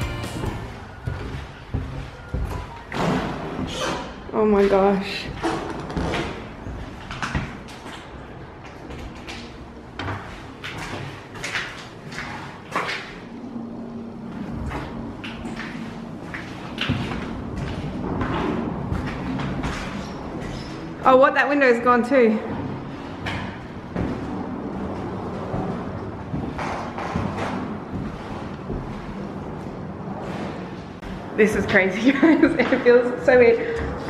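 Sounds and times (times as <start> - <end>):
footsteps and knocks on bare floor: 0.0 - 3.0, 25.0 - 29.2.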